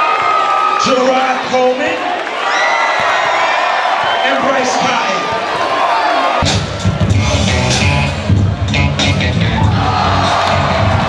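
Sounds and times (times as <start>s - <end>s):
crowd cheering and shouting: 0.0s - 11.0s
loud music with heavy bass: 6.4s - 11.0s.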